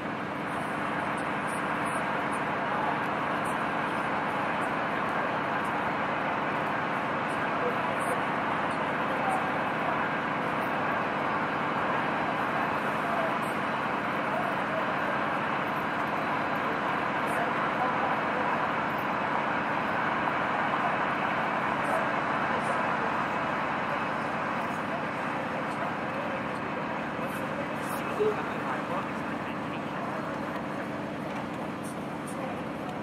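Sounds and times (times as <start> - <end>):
chatter of many voices: 0.0 - 33.0.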